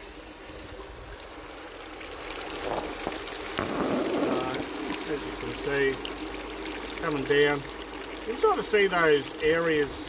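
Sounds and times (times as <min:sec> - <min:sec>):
water pump: 0:00.0 - 0:10.0
water rushing down a sluice: 0:00.0 - 0:10.0.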